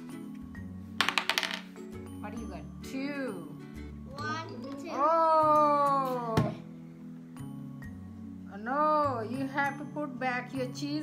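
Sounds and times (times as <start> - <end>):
background music: 0.0 - 11.0
die clattering across table: 1.0 - 1.8.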